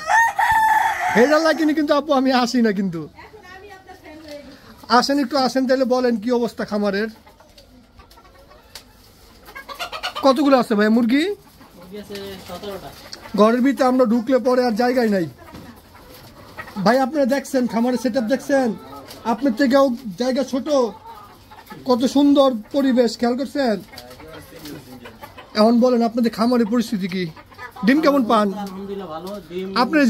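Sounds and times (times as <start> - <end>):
chickens calling: 0.0 - 30.0.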